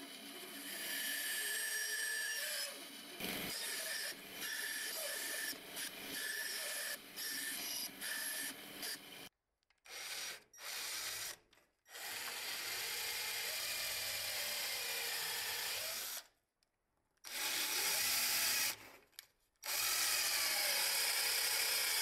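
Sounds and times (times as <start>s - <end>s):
power drill boring into plywood: 17.3s - 18.8s, 19.6s - 22.0s.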